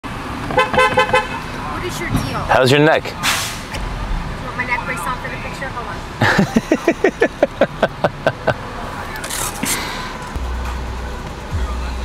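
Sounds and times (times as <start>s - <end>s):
car horn beeps: 0.5s - 1.5s.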